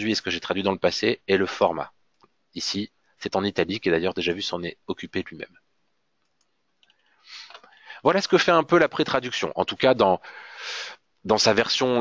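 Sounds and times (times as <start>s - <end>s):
computer mouse clicks: 6.2s - 7.7s
breath drawn: 6.9s - 8.0s.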